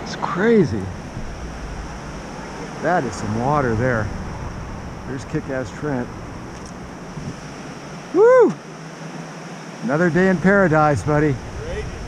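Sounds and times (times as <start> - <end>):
wind on microphone: 0.8 - 8.4, 10.2 - 12.0.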